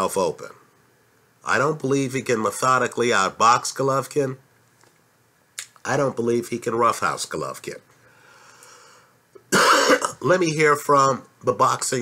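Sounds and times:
faint breathing: 0:07.9 - 0:09.2
man coughing: 0:09.4 - 0:10.2.

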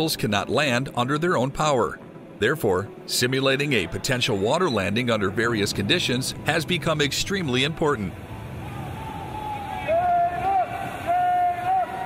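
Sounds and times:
pool water splashing: 0:02.5 - 0:12.0.

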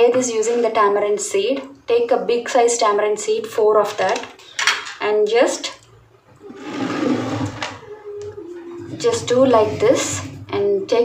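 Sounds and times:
stone bowl scraping on tabletop: 0:06.4 - 0:07.8, 0:08.8 - 0:10.6
woman saying uh: 0:07.9 - 0:11.0.

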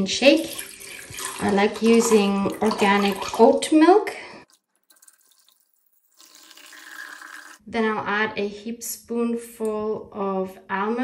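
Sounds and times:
milk pouring into plastic jug: 0:00.4 - 0:03.7, 0:04.5 - 0:07.6.

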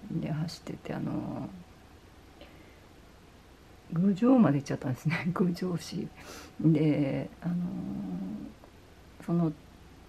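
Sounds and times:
woman speaking: 0:00.0 - 0:01.7, 0:03.9 - 0:08.6, 0:09.2 - 0:09.6.

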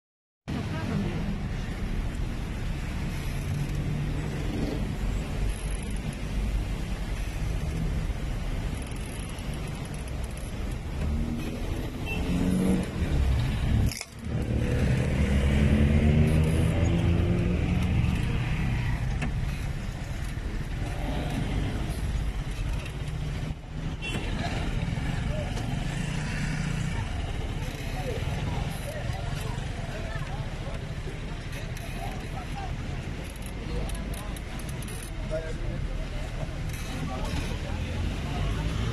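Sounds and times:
car engines in slow traffic: 0:00.5 - 0:38.9
people's voices: 0:00.5 - 0:38.9.

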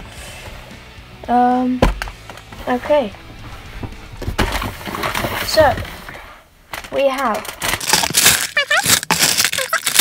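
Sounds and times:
cardboard packaging rustling: 0:04.2 - 0:10.0.

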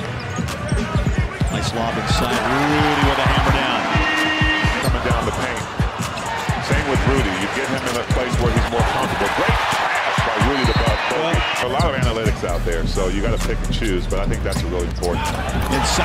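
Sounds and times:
crowd noise: 0:00.0 - 0:16.0
music playing: 0:00.0 - 0:16.0.

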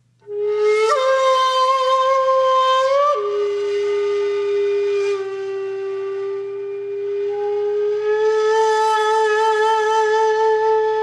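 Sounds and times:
flute-like wind instrument: 0:00.0 - 0:11.0.

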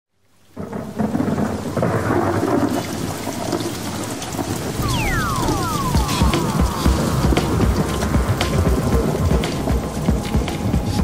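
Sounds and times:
heavy rain: 0:00.1 - 0:11.0
falling whistling tones: 0:04.8 - 0:07.4.

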